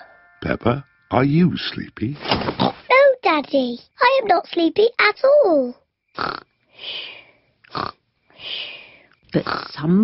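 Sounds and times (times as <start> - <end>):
cartoon piglet snoring: 6.2 - 6.4, 7.7 - 8.0, 9.4 - 9.8
short snort: 6.2 - 6.4, 7.7 - 8.0.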